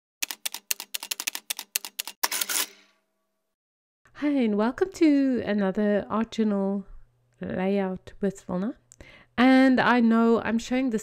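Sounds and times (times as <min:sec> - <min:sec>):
typewriter key strikes: 0:00.2 - 0:02.9
typewriter rattling burst: 0:00.2 - 0:02.9.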